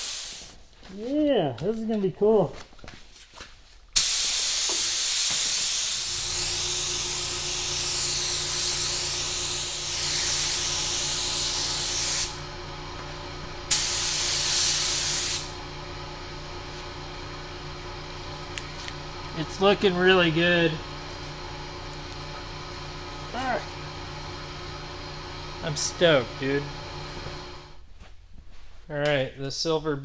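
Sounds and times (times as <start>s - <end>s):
spray gun hissing: 0.0s - 0.5s, 4.0s - 12.4s, 13.7s - 15.6s
low machine hum: 6.0s - 28.0s.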